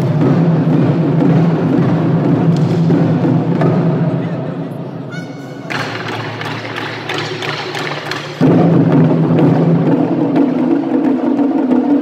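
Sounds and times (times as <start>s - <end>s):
taiko drum ensemble: 0.0s - 12.0s.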